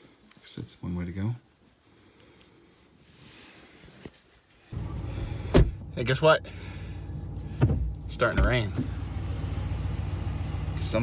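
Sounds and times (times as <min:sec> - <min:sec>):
road noise: 0:04.7 - 0:11.0
vehicle engine hum: 0:04.7 - 0:11.0.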